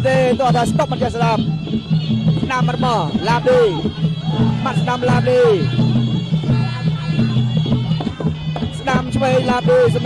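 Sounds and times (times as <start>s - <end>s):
drums beating: 0.0s - 10.0s
reedy wind instrument: 0.0s - 10.0s.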